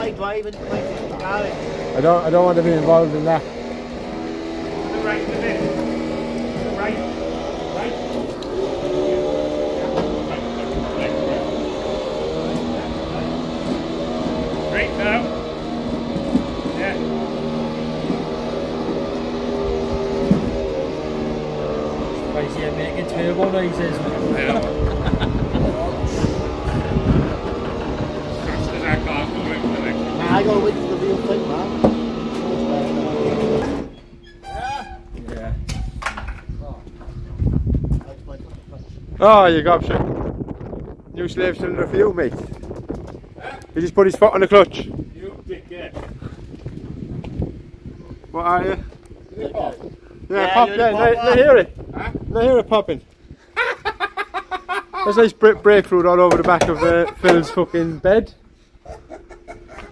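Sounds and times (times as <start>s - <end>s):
winch motor drone: 0.0s - 35.4s, 41.4s - 59.9s
knocks: 56.2s - 57.4s.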